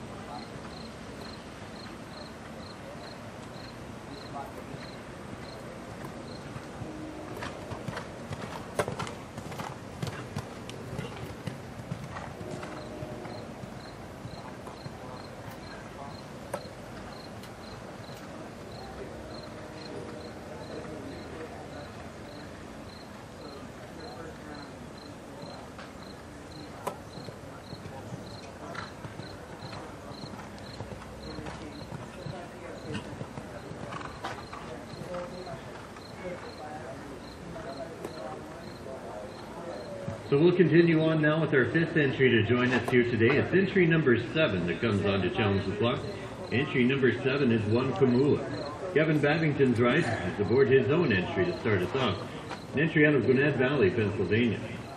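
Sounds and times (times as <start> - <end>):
horse hoofbeats on dirt: 4.4 - 15.8, 25.4 - 36.6.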